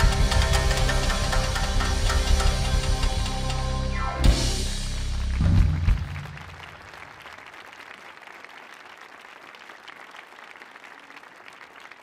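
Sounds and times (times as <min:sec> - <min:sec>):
cello and synthesizer held notes: 0:00.0 - 0:05.2
heavy drums: 0:00.0 - 0:06.7.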